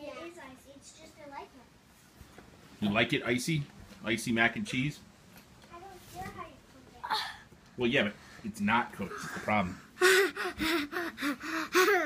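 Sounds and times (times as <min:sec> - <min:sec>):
child laughing: 0:09.1 - 0:12.0.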